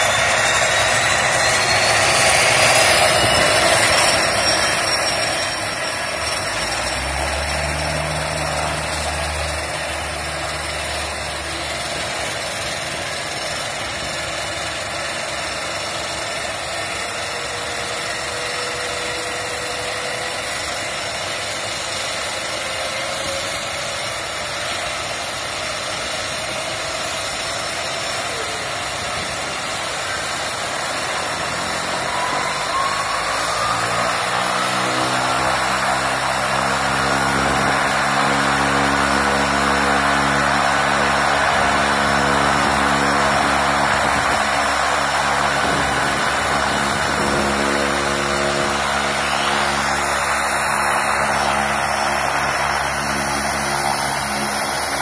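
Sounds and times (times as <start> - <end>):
turboprop turbine whine: 0.0 - 55.0.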